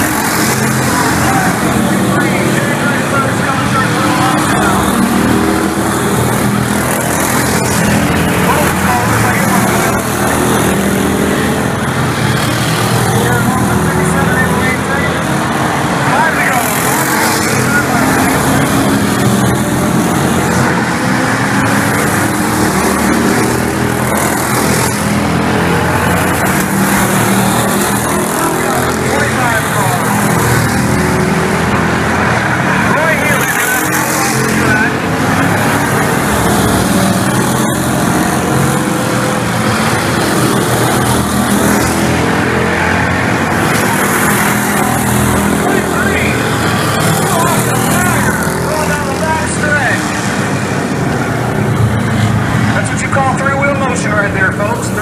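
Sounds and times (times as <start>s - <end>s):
race car engines running hard: 0.0s - 55.0s
voices: 0.0s - 55.0s.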